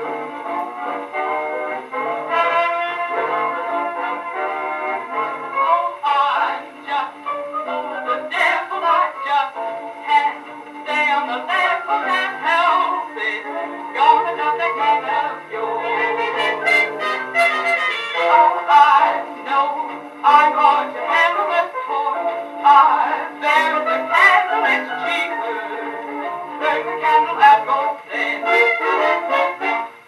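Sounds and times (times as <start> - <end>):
dance orchestra with brass: 0.0 - 30.0
person singing: 0.0 - 30.0.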